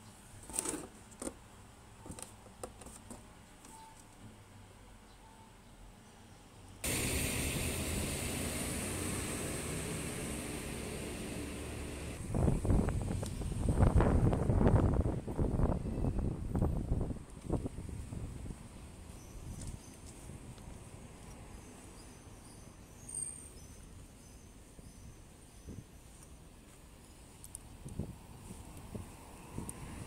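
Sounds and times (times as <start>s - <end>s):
traffic hiss: 6.8s - 14.7s.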